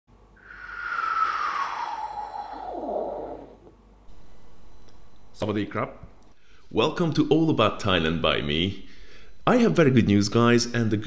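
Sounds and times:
airplane flyby whoosh: 0:00.4 - 0:03.6.

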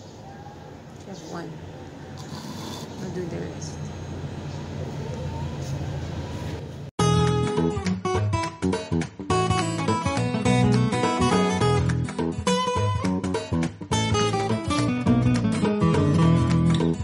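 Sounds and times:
plucked acoustic guitar music: 0:07.0 - 0:17.0.

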